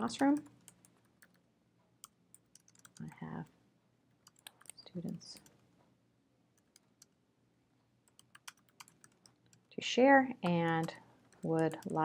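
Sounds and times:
person speaking: 0.0 - 0.6, 2.9 - 3.6, 4.6 - 5.6, 9.7 - 12.0
keystrokes on computer keyboard: 0.0 - 1.4, 2.0 - 3.2, 4.1 - 5.6, 6.6 - 7.2, 8.1 - 9.7, 10.4 - 12.0.

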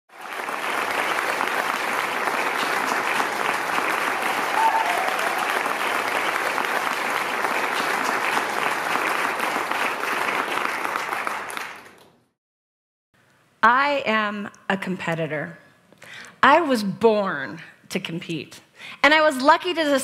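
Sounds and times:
audience applauding: 0.1 - 12.3.

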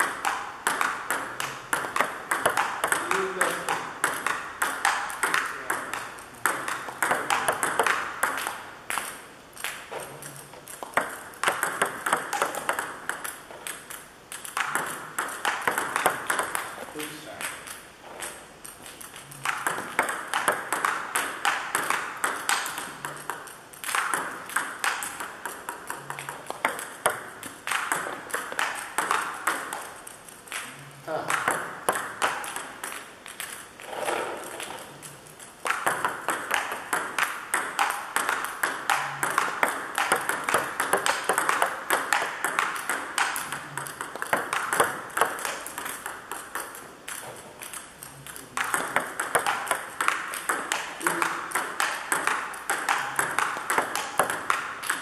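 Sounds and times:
table tennis ball clicks: 0.0 - 55.0.

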